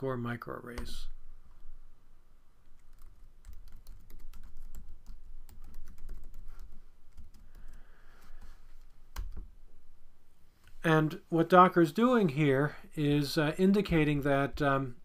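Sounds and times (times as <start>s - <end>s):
typing on computer keyboard: 2.8s - 7.8s.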